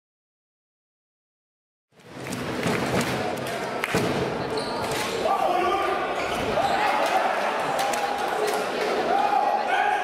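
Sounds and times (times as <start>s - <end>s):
crowd noise: 2.0s - 10.0s.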